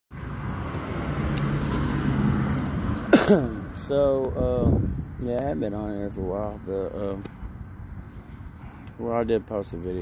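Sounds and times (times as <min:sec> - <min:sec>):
vehicle engine humming: 0:00.1 - 0:10.0.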